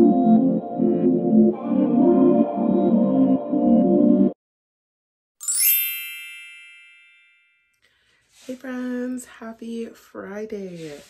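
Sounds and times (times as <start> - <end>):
bright bell-like chime: 5.4 - 7.8.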